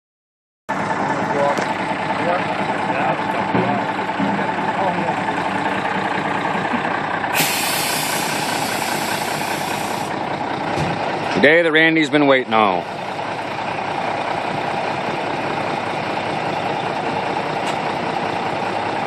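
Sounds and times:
diesel truck engine idling: 0:00.7 - 0:19.0
air brake hissing: 0:07.3 - 0:10.2.

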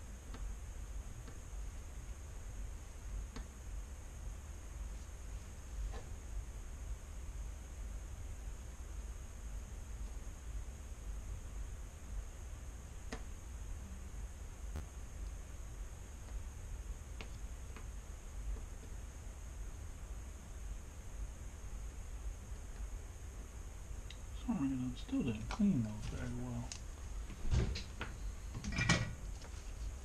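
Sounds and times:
steady high whine: 0:00.0 - 0:30.0.

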